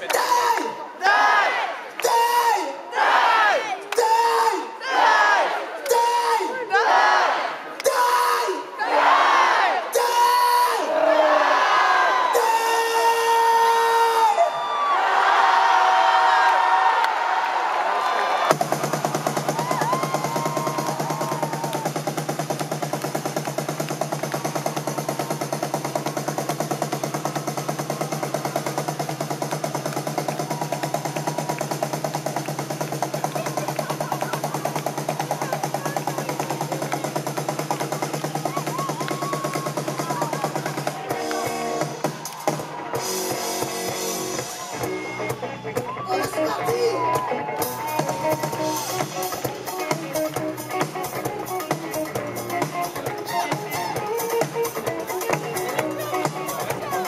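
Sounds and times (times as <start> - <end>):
rock band playing: 18.5 - 57.0.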